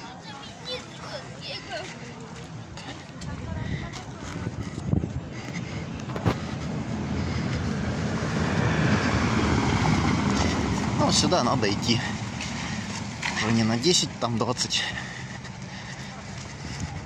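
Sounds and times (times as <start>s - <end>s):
tyres rumbling on cobblestones: 0.0s - 17.0s.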